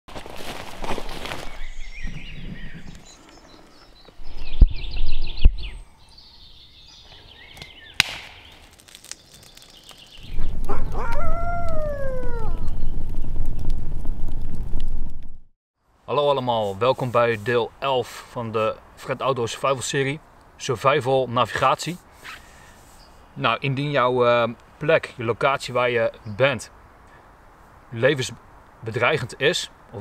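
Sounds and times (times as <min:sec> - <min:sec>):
footsteps through undergrowth: 0:00.1 - 0:02.1
birds chirping: 0:01.3 - 0:13.4
sharp crack: 0:07.6 - 0:15.0.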